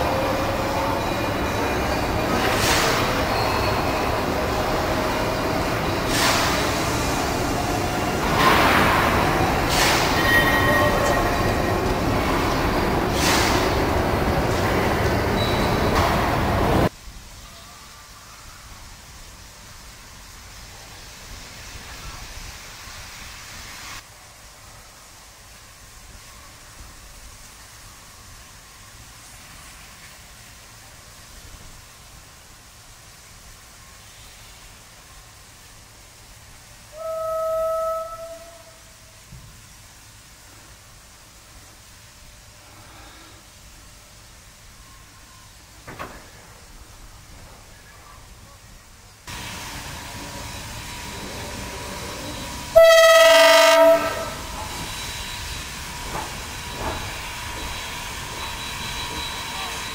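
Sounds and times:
loud steam hiss: 0.0 - 59.9
steam whistle blast: 36.9 - 39.1, 52.7 - 54.5.

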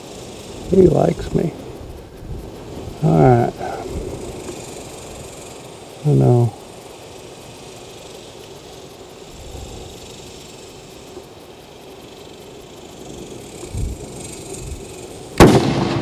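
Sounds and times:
rifle shot with ringing: 15.4 - 16.0.

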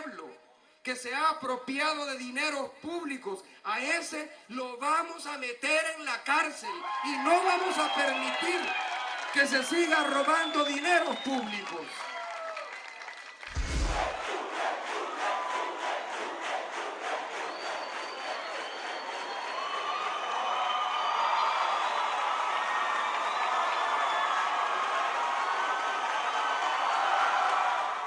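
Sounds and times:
crowd cheering and shouting: 6.7 - 10.3, 13.5 - 28.0
low thump: 13.5 - 14.2.

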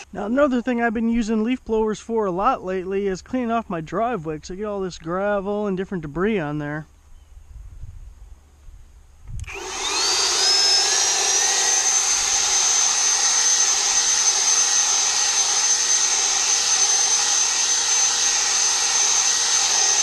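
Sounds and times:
leaf blower whining: 0.0 - 0.2, 9.4 - 20.0.

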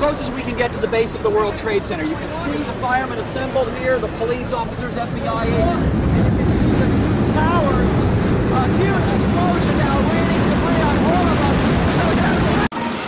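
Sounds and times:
low rumble of engines: 0.0 - 12.7
people talking: 0.0 - 12.7.

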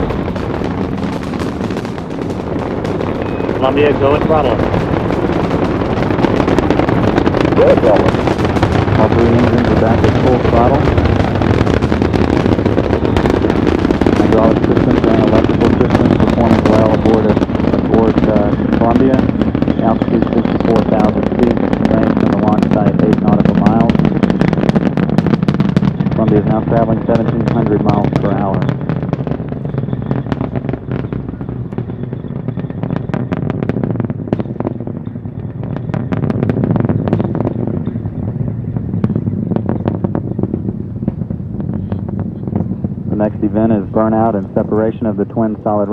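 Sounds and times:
rocket launch deep rumble: 0.0 - 45.9
sharp crackling: 0.0 - 45.9.

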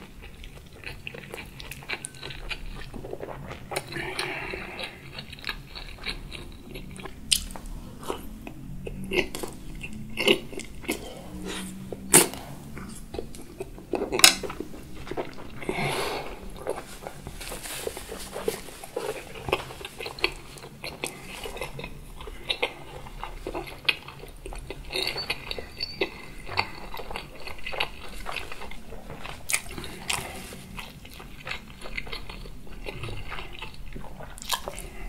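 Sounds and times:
chewing food: 0.0 - 35.0.

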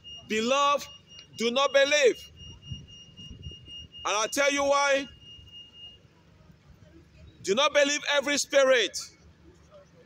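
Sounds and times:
low street background noise: 0.0 - 10.0
man speaking: 0.3 - 2.3, 4.0 - 5.1, 7.5 - 9.1.

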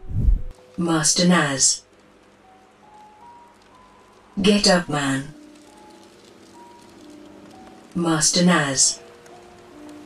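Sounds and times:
faint background music: 0.0 - 10.0
low hiss: 0.0 - 10.0.

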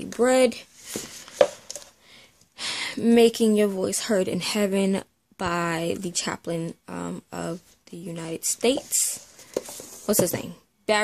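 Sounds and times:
book sliding rustle: 8.7 - 10.3
book knocking on shelf: 9.5 - 10.4.

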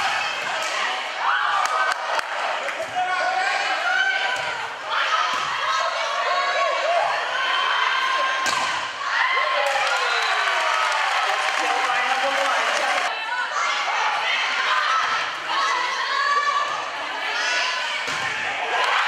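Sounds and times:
players and spectators shouting: 0.0 - 19.0.

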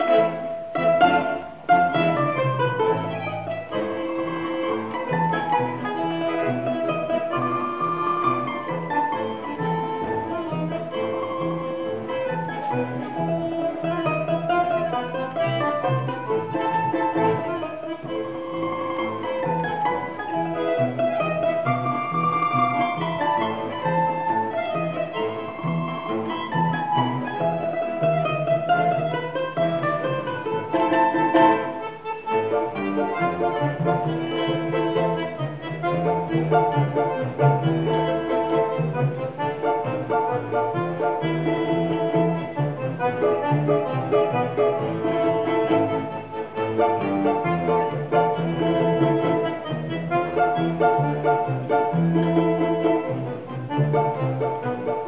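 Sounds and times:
button accordion chords: 0.0 - 55.0.

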